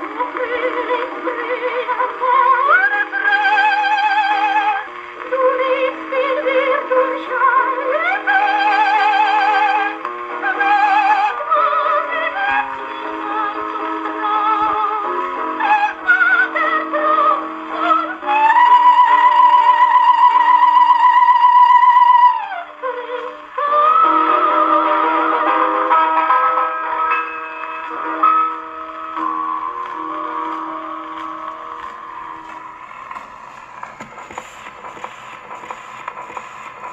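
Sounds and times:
accompaniment on old record: 0.0 - 36.9
needle surface noise: 31.8 - 36.9.

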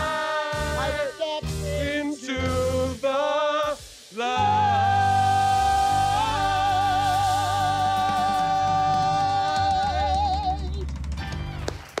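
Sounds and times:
applause: 11.4 - 12.0.

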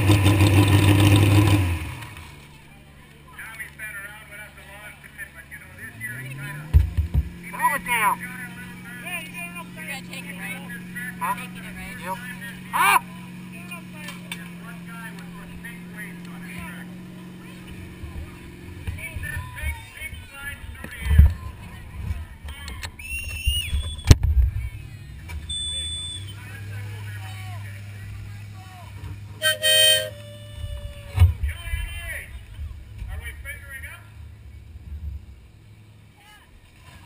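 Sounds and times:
people talking: 2.4 - 6.8, 7.4 - 23.0, 24.4 - 34.5
tractor engine idling: 24.6 - 36.7
short high tone: 29.4 - 30.7.

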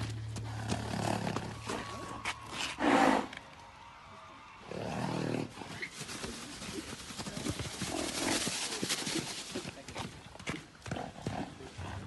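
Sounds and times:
hoofbeats on sand: 0.0 - 3.0, 5.4 - 12.0.

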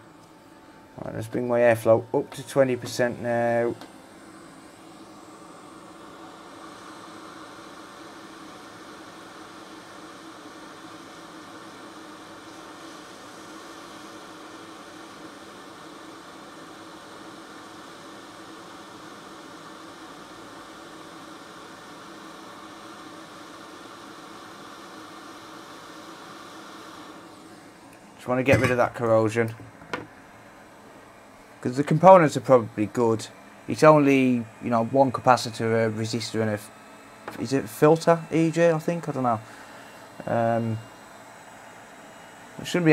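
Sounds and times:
faint hum: 0.0 - 16.4, 27.0 - 42.9
hot air station hissing: 0.0 - 42.9.

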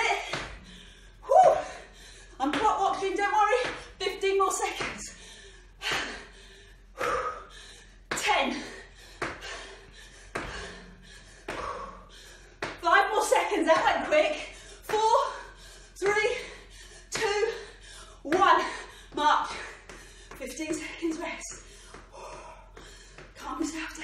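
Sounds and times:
woman breathing hard: 0.2 - 2.5, 5.0 - 12.8, 14.3 - 23.4.

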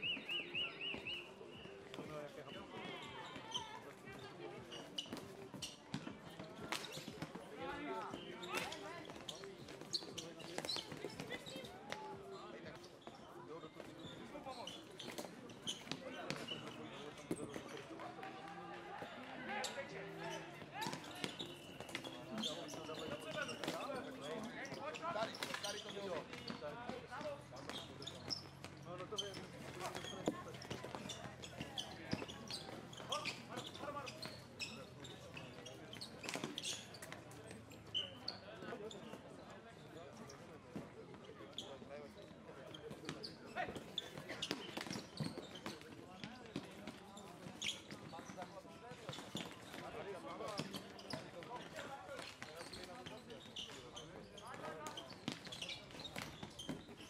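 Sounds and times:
voices of onlookers: 16.7 - 28.1.

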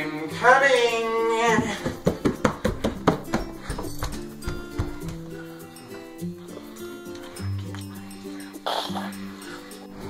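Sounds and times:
upbeat background music: 0.0 - 10.0
hands and knees knocking on floor: 1.5 - 5.3.

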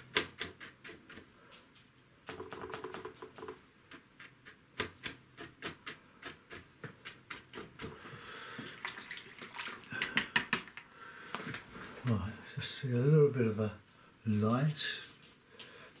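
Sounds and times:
brush scraping: 0.0 - 2.1
paintbrush tapping on paper: 2.2 - 8.0.

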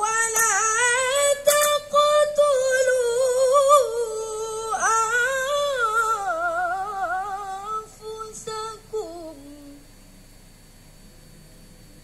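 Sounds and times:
boy reciting melodically: 0.0 - 9.8.

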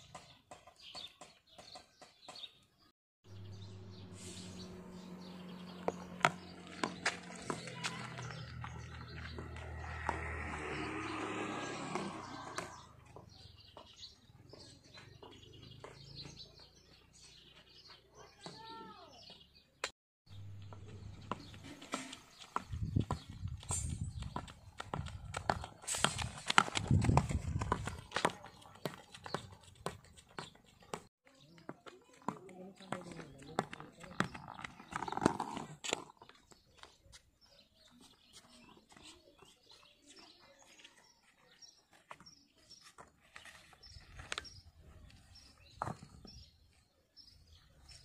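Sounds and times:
birds chirping: 0.0 - 48.0
running footsteps in sandals: 4.6 - 19.6, 20.5 - 48.0.

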